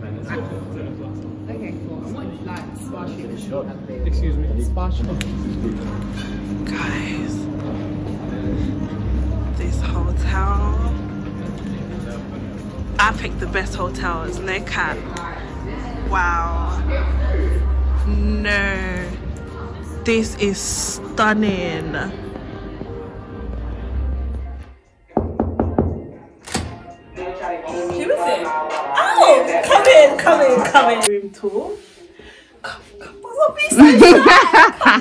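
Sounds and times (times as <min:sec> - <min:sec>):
steady low rumble: 0:00.6 - 0:24.6.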